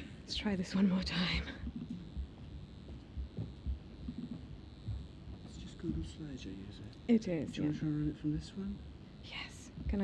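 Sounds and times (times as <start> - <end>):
dull low thumps: 1.8 - 5.2.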